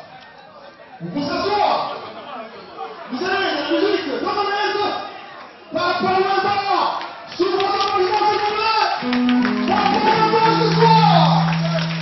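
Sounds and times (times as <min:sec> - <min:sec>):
crowd chatter: 0:00.0 - 0:05.8, 0:09.0 - 0:12.0.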